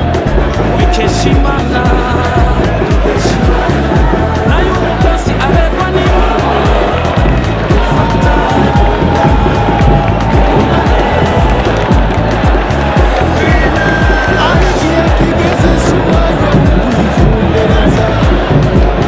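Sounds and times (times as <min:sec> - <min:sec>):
music with heavy beat: 0:00.0 - 0:19.0.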